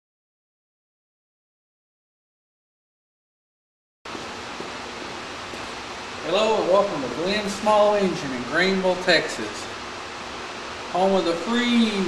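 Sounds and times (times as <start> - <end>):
room noise hiss: 4.1 - 12.0.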